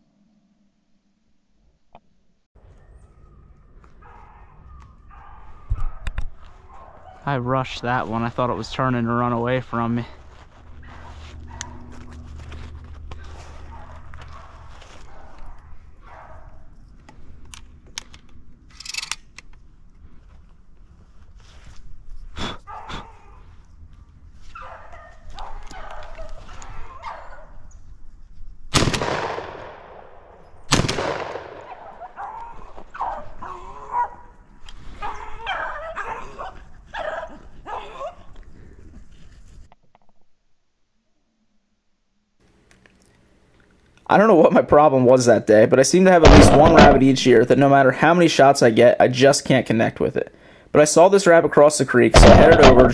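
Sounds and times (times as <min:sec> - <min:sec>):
dogs baying: 0:03.9 - 0:07.3, 0:10.8 - 0:16.7, 0:24.6 - 0:27.6, 0:31.7 - 0:38.5
shotgun shots: 0:28.7 - 0:32.0, 0:46.2 - 0:47.5, 0:52.2 - 0:52.9.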